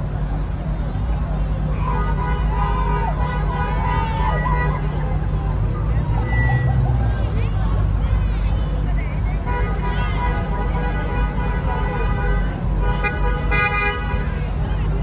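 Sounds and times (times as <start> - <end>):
engine rumble: 0.0 - 15.0
people shouting: 1.7 - 5.1
vehicle horns honking: 1.8 - 5.0, 9.4 - 15.0.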